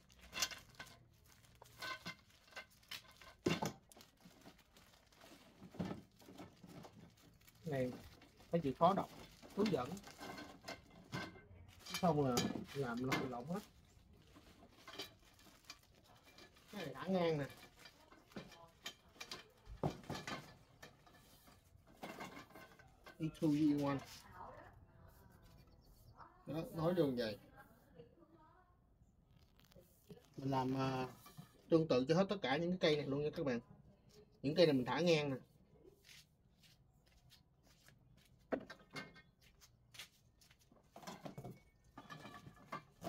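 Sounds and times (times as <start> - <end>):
plastic wrapping crinkling and tearing: 0.0 - 11.1, 11.7 - 19.7, 29.3 - 30.9
metal parts clicking and tapping: 1.6 - 3.8.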